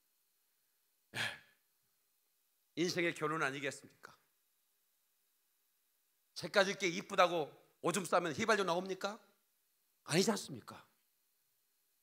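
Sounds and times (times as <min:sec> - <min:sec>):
man sighing: 0:01.1 - 0:01.5.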